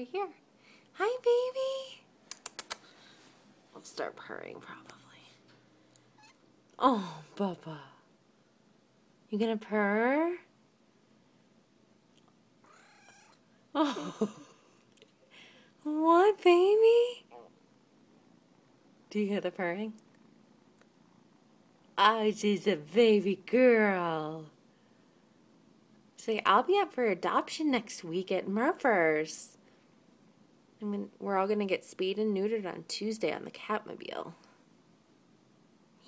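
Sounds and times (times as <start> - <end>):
kitten purring: 12.2 - 13.6, 17.2 - 22.0.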